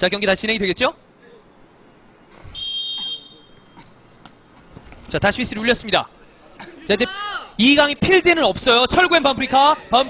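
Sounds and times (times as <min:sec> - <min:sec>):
referee's whistle blast: 0:02.5 - 0:03.8.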